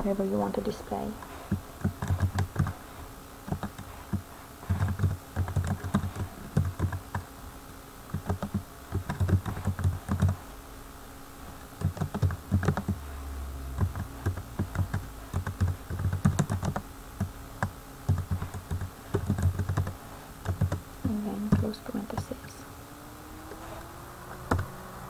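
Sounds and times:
typing on a computer keyboard: 0:01.5 - 0:02.8, 0:03.5 - 0:07.3, 0:08.1 - 0:10.4, 0:11.8 - 0:13.0, 0:13.8 - 0:20.8.

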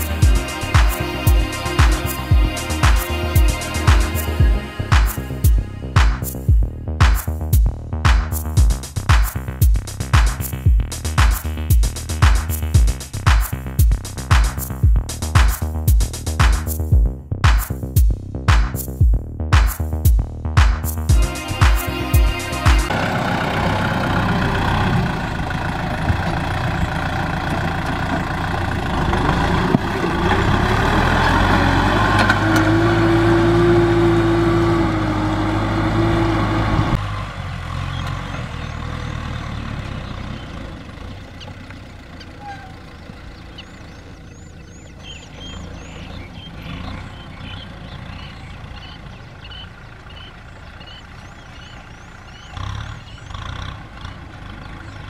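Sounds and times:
birds chirping: 0:00.0 - 0:07.4, 0:21.1 - 0:36.6, 0:37.8 - 0:55.0
tractor diesel engine under load: 0:00.0 - 0:17.0, 0:20.9 - 0:55.0.

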